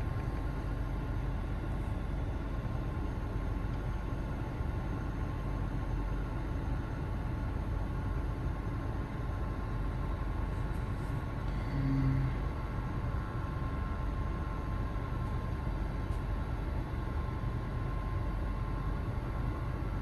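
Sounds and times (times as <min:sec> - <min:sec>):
car engine idling: 0:00.0 - 0:20.0
faint steady hum: 0:00.0 - 0:20.0
short low tone: 0:11.5 - 0:12.6.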